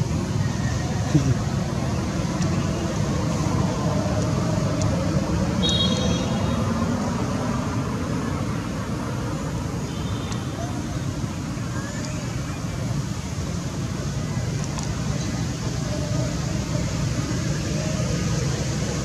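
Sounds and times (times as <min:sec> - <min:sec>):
faint voices: 0:00.0 - 0:05.5, 0:10.4 - 0:19.0.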